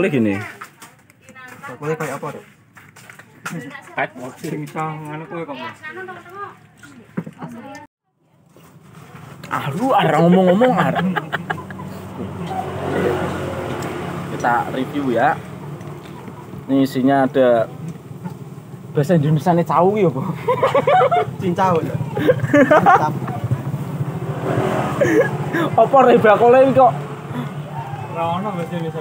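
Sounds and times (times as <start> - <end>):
road noise: 0.0 - 29.0
motorcycle engine running: 8.6 - 29.0.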